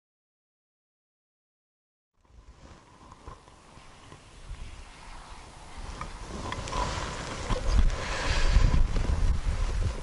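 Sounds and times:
wind buffeting microphone: 0:02.2 - 0:10.0.

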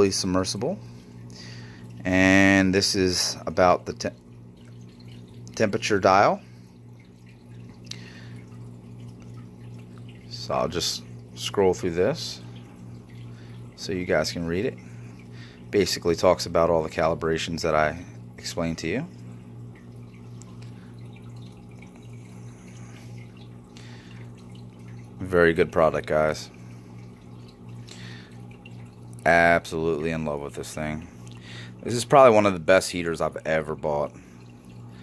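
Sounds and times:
aquarium water circulation hum: 0:00.0 - 0:35.0.

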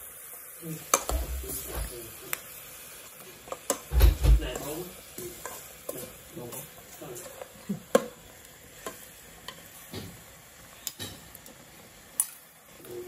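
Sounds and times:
faint sizzle of frying fish: 0:00.0 - 0:13.0.

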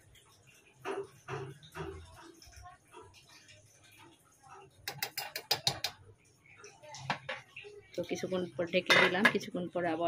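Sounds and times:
spoon clicking and scraping a pot: 0:00.2 - 0:06.1.

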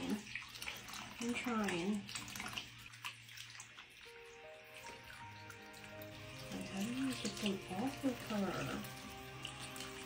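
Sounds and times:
tap water splashing in sink: 0:00.0 - 0:10.0.

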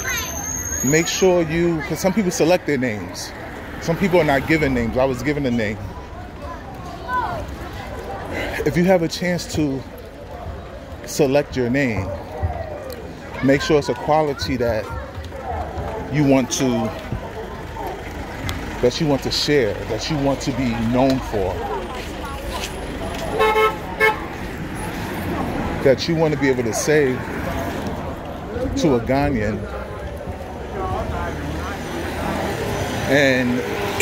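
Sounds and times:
faint voices: 0:00.0 - 0:34.0.

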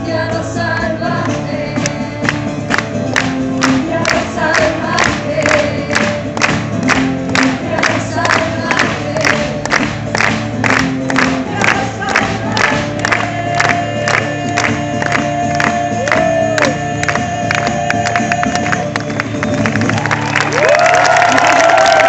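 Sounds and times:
woman singing: 0:00.0 - 0:02.5, 0:03.6 - 0:06.2, 0:07.4 - 0:09.8, 0:11.4 - 0:18.8
crowd voices singing along: 0:00.0 - 0:10.1, 0:11.1 - 0:19.2
acoustic guitar: 0:00.0 - 0:20.4
crowd clapping along: 0:01.0 - 0:22.0.

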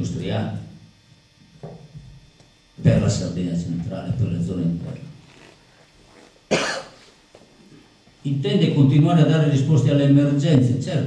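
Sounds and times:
man coughing: 0:06.5 - 0:07.1.

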